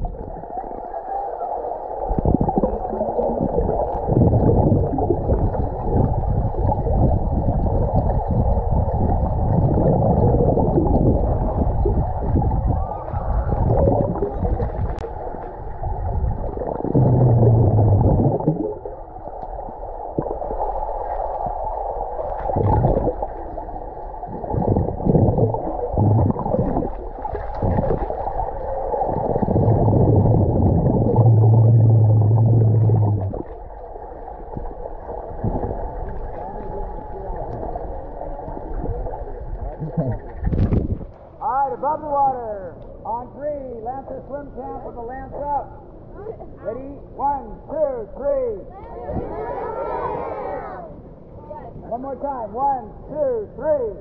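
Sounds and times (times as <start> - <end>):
underwater churning and bubbles: 0.0 - 41.4
low steady tone: 29.1 - 33.6.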